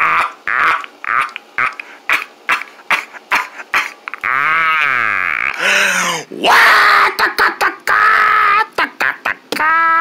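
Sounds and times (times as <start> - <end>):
person making cartoon voice cries: 3.3 - 10.0.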